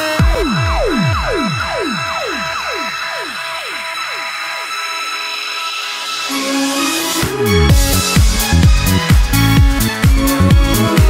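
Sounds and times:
bass: 0.0 - 3.0, 6.3 - 11.0
falling synth sweeps: 0.0 - 9.0
sustained high tone: 0.2 - 8.2.

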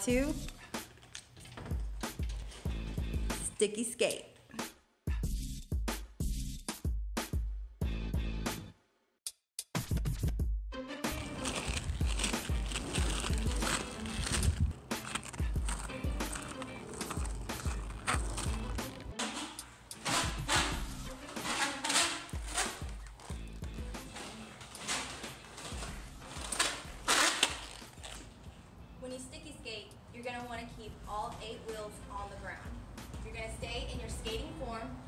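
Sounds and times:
roller-skate wheels rolling on concrete: 11.1 - 28.6.

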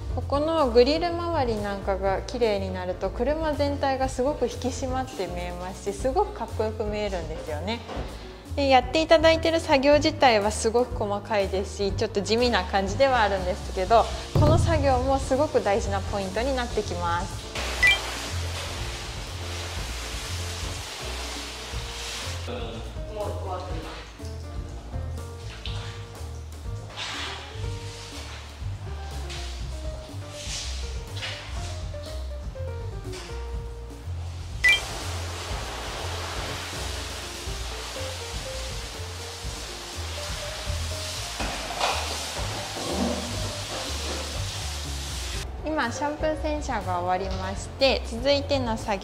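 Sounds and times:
background music bass line: 0.0 - 41.4
hose water spraying on car: 15.3 - 22.5, 25.4 - 32.0, 34.1 - 45.4.

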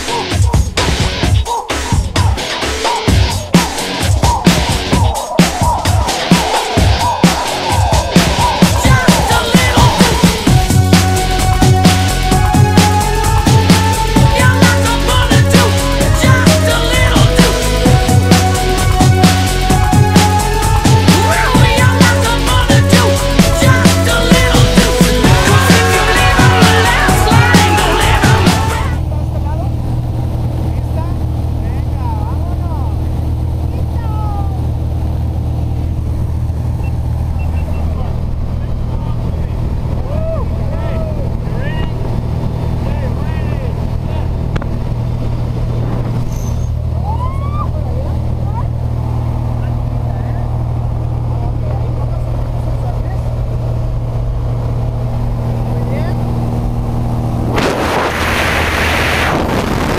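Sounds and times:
propeller plane engine drone: 3.4 - 59.9.

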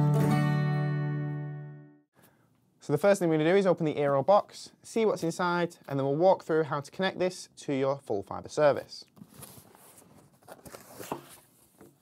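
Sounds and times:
cardboard rustling: 9.2 - 12.0
soft scrapes and taps: 9.2 - 12.0.

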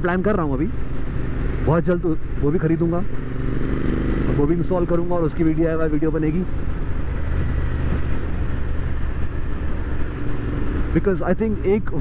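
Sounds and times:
motorcycle engine rumble: 0.0 - 12.0
wind and road noise: 0.0 - 12.0.

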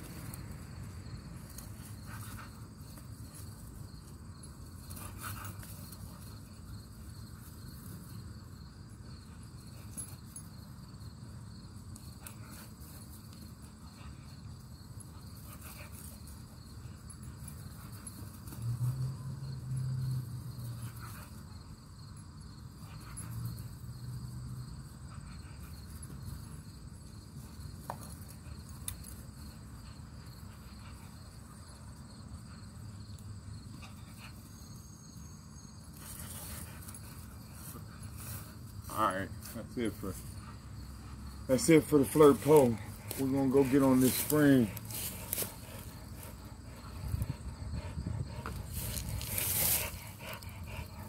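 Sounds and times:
insects trilling: 0.0 - 51.0
dog panting: 39.9 - 51.0.

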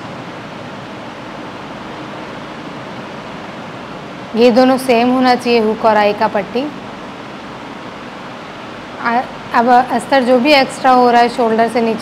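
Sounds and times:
steady even noise: 0.0 - 12.0.

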